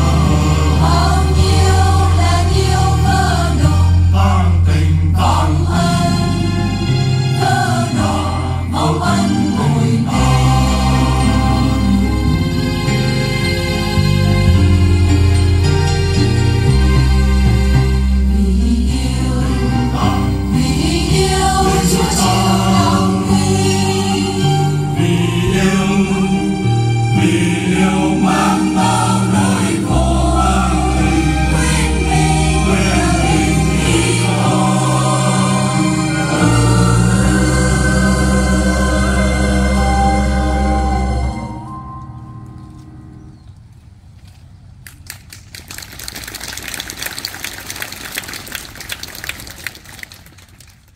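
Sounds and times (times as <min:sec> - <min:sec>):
choir singing a hymn: 0:00.0 - 0:13.4, 0:16.6 - 0:42.0
audience applause: 0:45.0 - 0:50.9.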